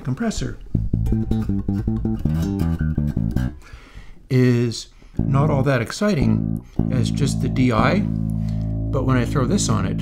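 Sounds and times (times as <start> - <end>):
electric bass plucked notes: 0.4 - 3.7, 5.2 - 10.0.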